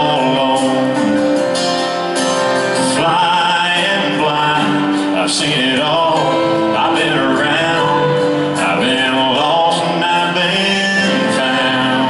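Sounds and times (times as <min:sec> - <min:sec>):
backing band: 0:00.0 - 0:12.0
man singing: 0:00.0 - 0:12.0
strummed acoustic guitar: 0:00.0 - 0:12.0.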